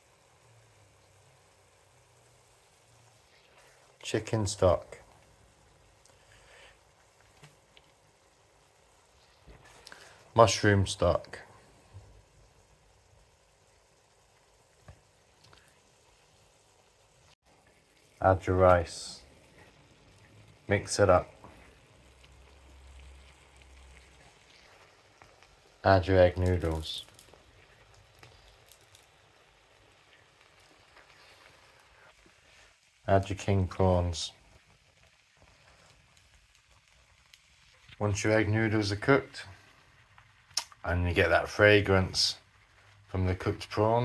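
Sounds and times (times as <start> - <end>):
noodles sizzling in a wok: 0.0 - 44.0
small pops: 7.0 - 8.0, 40.2 - 40.8.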